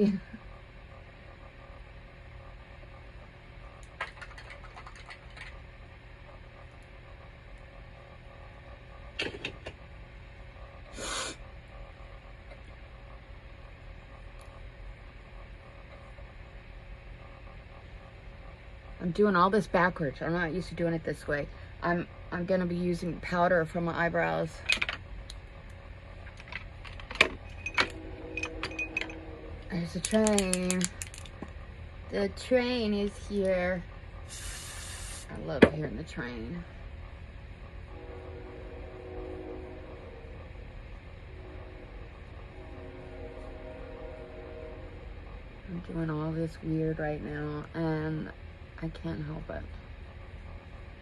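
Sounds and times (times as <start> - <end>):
low hum: 0.0 - 51.0
small objects clicking and tapping: 30.0 - 31.5
short hiss: 34.3 - 35.3.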